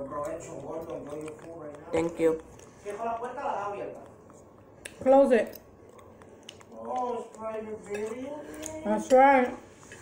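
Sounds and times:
forks clicking against dishes: 6.8s - 9.5s.

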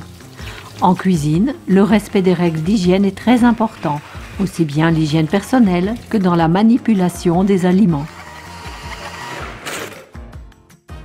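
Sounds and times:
paper towel dispenser motor: 7.6s - 10.2s.

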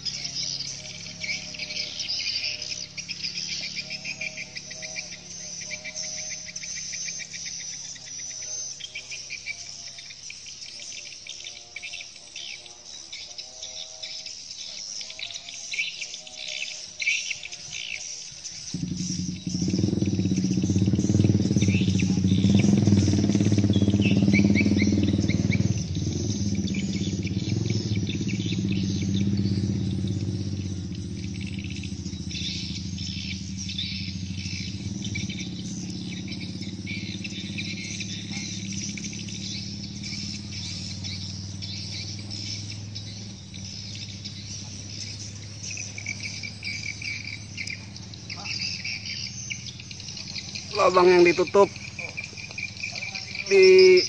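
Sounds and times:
swiftlets twittering: 18.6s - 54.0s.

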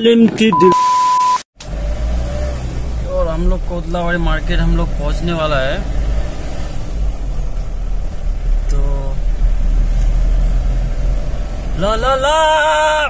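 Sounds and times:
car engine and road noise: 0.0s - 13.0s
brief pitched sound: 0.5s - 1.4s.

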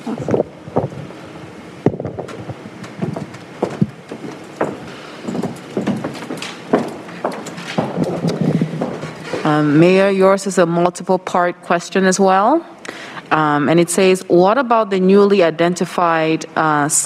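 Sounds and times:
footsteps: 0.0s - 10.4s
sharp knocks: 1.9s - 9.5s.

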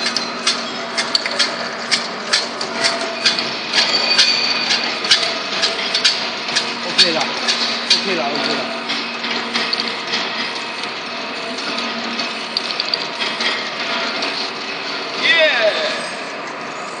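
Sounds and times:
bottle-capping machine clatter: 0.0s - 15.2s
rapid clicks of glass bottles: 11.8s - 13.6s.

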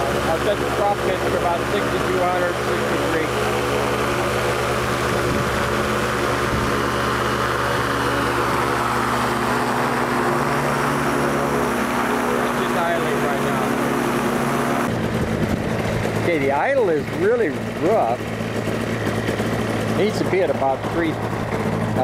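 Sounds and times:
engine and propeller droning: 0.0s - 22.0s.

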